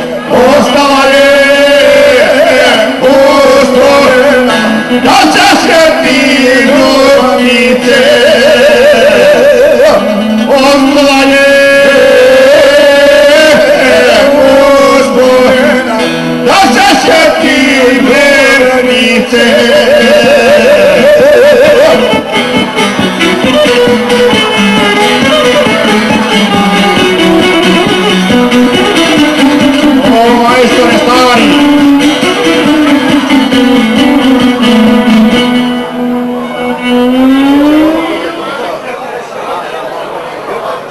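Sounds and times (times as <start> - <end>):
long-necked lute strummed: 0.0 - 38.8
violin accompaniment: 0.0 - 39.0
man singing a long held note: 0.2 - 22.2.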